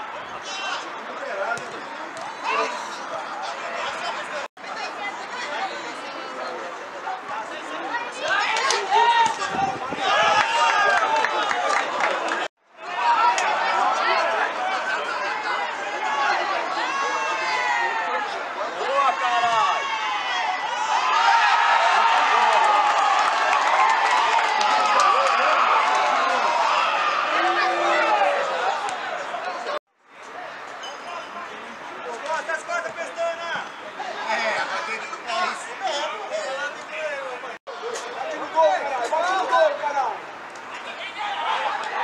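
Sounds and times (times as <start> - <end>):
people shouting and calling out: 0.0 - 11.7, 12.8 - 23.0, 24.6 - 42.0.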